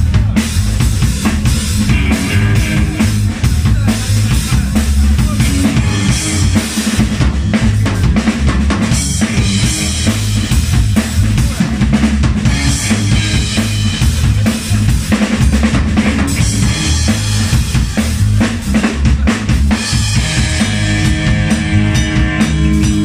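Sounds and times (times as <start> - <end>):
drum kit kick and snare: 0.0 - 23.0
electric guitar: 0.0 - 23.0
heavy electric bass line: 0.0 - 23.0.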